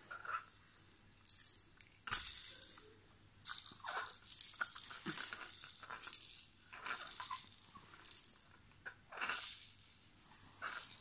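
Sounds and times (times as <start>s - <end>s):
baby rattle shaken: 0.2s - 11.0s.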